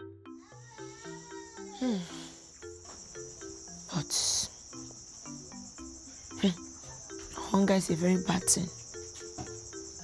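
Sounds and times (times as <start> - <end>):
crickets chirping: 0.0 - 10.0
soft background music: 0.0 - 10.0.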